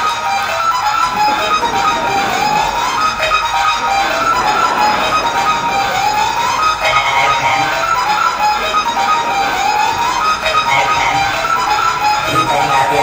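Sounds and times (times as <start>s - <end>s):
rising siren-like tone: 1.0s - 12.2s.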